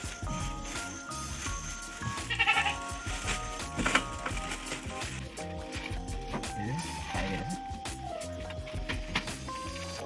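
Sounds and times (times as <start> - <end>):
background music: 0.0 - 10.0
goat bleating: 2.1 - 3.0.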